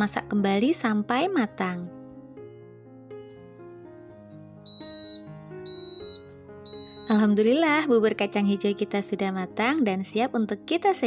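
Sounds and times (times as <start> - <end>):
background music: 0.0 - 11.0
rice cooker beeping: 4.7 - 7.4.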